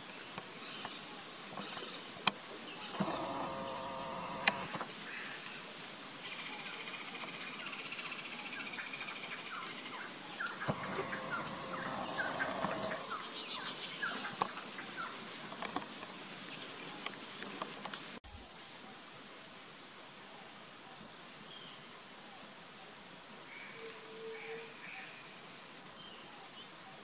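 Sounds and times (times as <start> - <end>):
sharp clicks: 2.2 - 4.9, 10.7 - 13.1.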